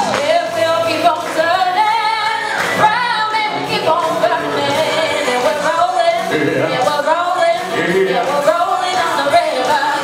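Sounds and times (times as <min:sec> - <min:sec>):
woman singing into a microphone: 0:00.0 - 0:10.0.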